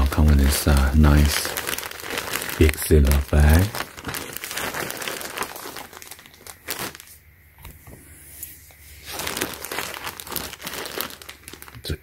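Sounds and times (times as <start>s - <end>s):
plastic bag crinkling: 0.0s - 7.2s, 8.9s - 12.0s.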